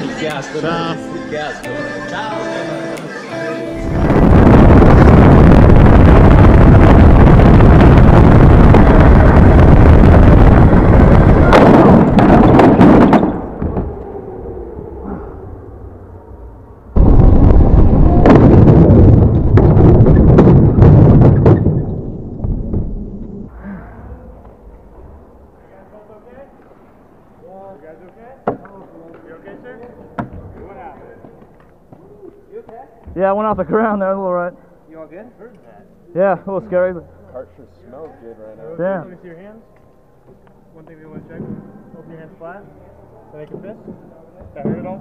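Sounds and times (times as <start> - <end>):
go-kart engine and wind rush: 3.8 - 21.5.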